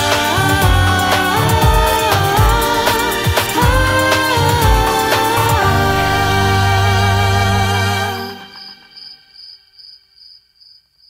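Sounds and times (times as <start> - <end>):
cricket chirping: 8.6 - 11.0.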